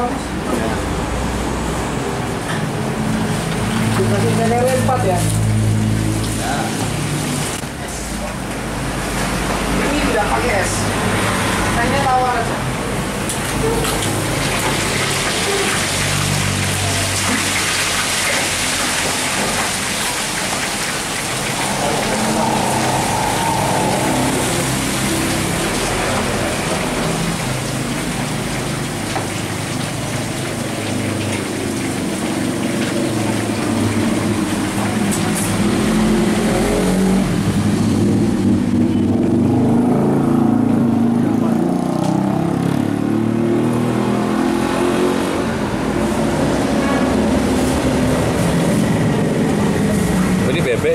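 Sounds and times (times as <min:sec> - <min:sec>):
road traffic noise: 0:00.0 - 0:50.9
voices talking: 0:20.0 - 0:27.0.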